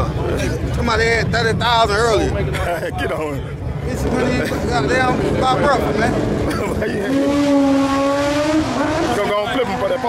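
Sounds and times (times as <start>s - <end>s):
car engine at high revs: 3.9s - 10.0s.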